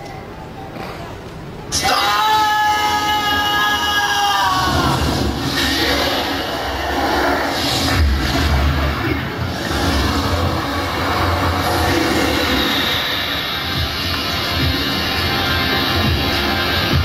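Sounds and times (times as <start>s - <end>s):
rumbling music over sound system: 1.7s - 17.0s.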